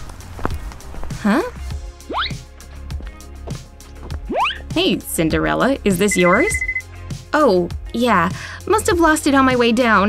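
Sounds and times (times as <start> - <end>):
background music with steady beat: 0.0 - 10.0
rising cartoon bloop: 2.1 - 2.4.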